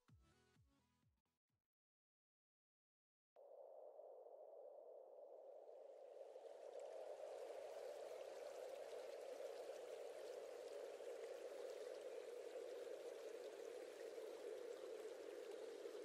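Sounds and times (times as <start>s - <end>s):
running water rushing: 6.4s - 16.0s.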